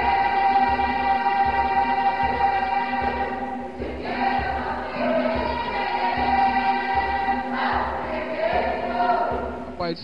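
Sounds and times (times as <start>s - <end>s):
gospel choir singing: 0.0s - 9.8s
steady low beat: 0.0s - 10.0s.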